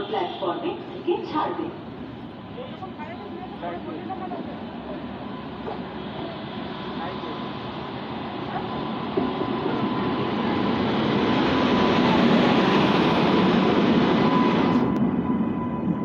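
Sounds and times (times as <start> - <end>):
electric locomotive running past: 0.0 - 16.0.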